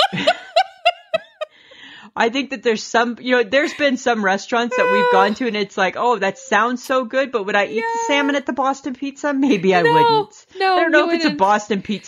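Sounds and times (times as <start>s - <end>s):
woman laughing: 0.0s - 1.6s, 4.7s - 5.5s, 7.7s - 8.4s, 9.5s - 10.2s
soft breath: 1.5s - 2.2s.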